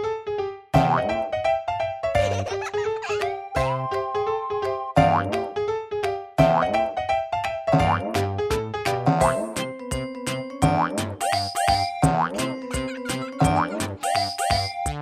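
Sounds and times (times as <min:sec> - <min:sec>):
cheerful cartoon music: 0:00.0 - 0:15.0.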